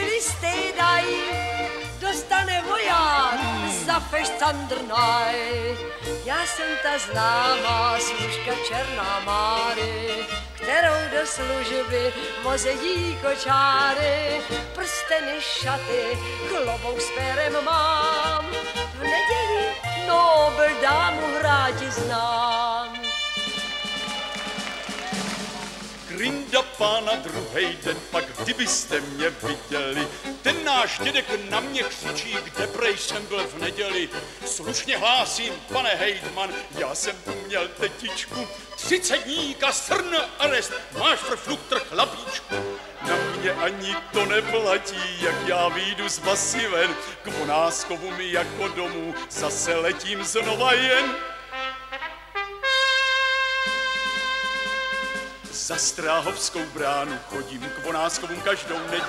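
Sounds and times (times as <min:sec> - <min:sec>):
band playing instrumental bridge: 0:00.0 - 0:59.0
rhythmic accompaniment: 0:00.0 - 0:59.0.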